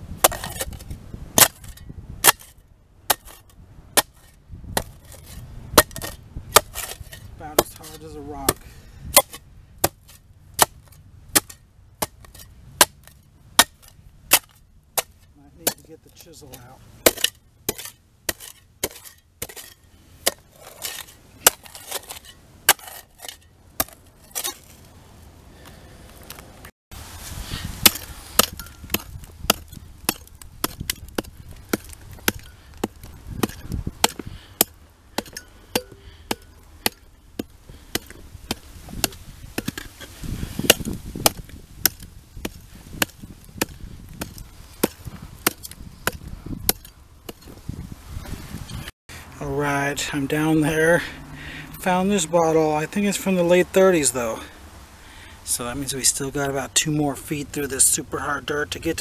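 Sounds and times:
gritty scraping of soil: 0:00.0 - 0:59.0
shovel chopping into hard dirt: 0:00.2 - 0:24.8, 0:27.7 - 0:47.6.

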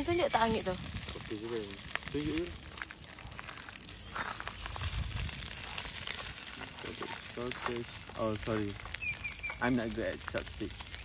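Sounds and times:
sausages sizzling in a frying pan: 0:00.0 - 0:11.0.

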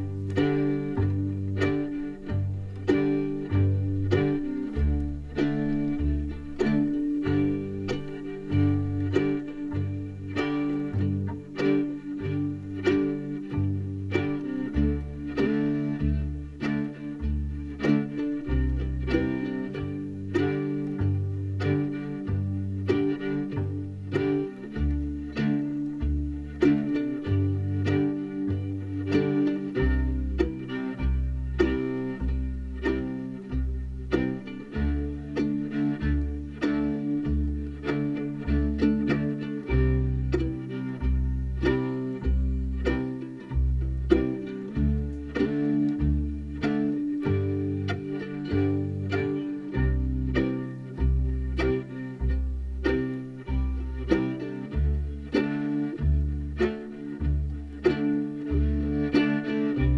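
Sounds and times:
acoustic guitar strumming: 0:00.0 - 0:59.9
fiddle bowing: 0:00.0 - 0:59.9.

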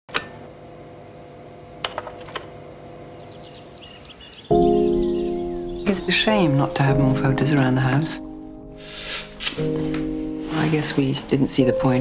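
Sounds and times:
bird chirping: 0:03.0 - 0:06.8.

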